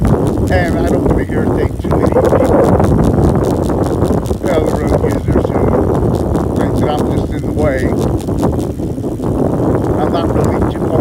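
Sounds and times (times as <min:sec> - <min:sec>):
quick irregular clicks: 0:00.0 - 0:10.6
tyre and road noise: 0:00.0 - 0:11.0
wind buffeting microphone: 0:00.0 - 0:11.0.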